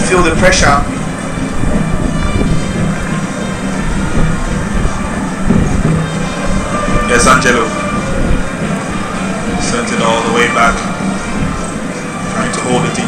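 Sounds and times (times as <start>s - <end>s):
crowd din: 0.0s - 13.0s
stadium music: 0.0s - 13.0s.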